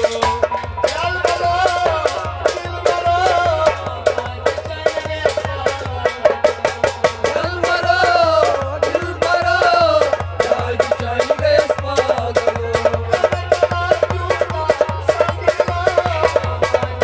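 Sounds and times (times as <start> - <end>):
hand drum strokes: 0.0 - 17.0.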